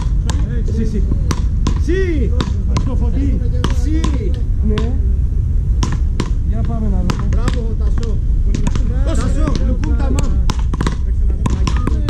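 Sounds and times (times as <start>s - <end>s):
wooden paddles hitting ball: 0.0s - 3.0s, 3.6s - 4.9s, 5.8s - 12.0s.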